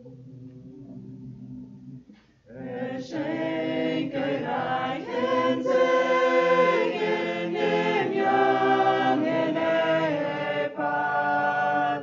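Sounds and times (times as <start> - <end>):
choir singing a hymn: 2.5 - 12.0.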